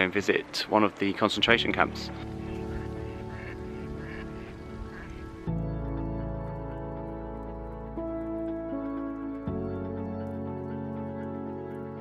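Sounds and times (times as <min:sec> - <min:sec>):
background music: 0:00.0 - 0:12.0
duck quacking: 0:02.3 - 0:05.3.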